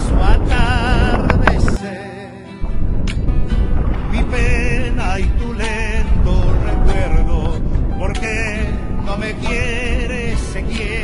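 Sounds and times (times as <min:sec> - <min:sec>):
low rumble: 0:00.0 - 0:01.8, 0:02.6 - 0:11.0.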